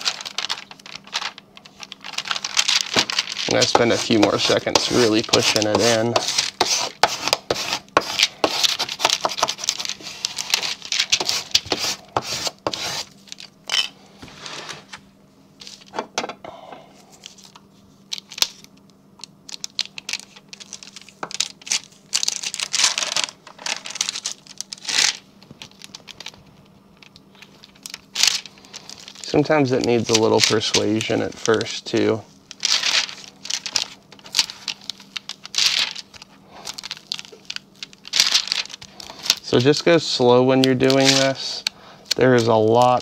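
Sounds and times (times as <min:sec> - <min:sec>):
paper crinkling and scraping: 0:00.0 - 0:13.5, 0:19.4 - 0:43.0.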